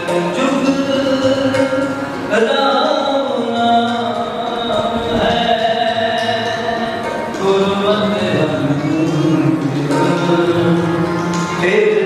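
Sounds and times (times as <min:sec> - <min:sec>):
sustained accompaniment: 0:00.0 - 0:12.0
devotional hymn singing: 0:02.3 - 0:12.0.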